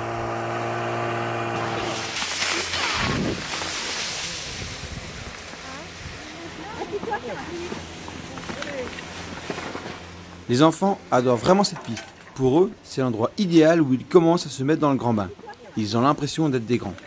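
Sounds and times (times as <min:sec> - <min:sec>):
steady machine hum: 0:00.0 - 0:03.7
skis sliding on snow: 0:01.2 - 0:10.4
wind on microphone: 0:02.8 - 0:03.6, 0:04.3 - 0:06.3.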